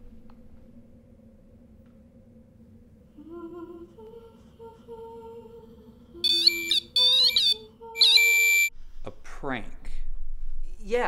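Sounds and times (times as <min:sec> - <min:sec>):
warbling electronic alarm tones: 0:06.2 - 0:08.7.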